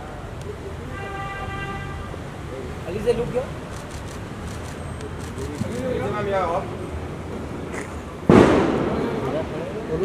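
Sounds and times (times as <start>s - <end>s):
loud bang with echo: 8.3s - 9.7s.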